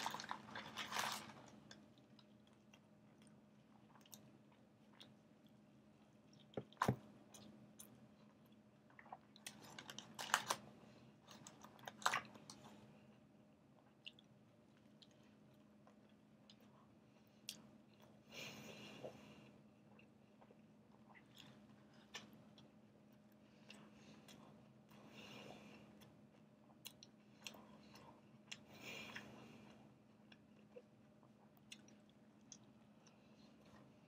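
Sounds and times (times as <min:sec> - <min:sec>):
person chewing food: 0:00.0 - 0:10.6, 0:11.2 - 0:34.0.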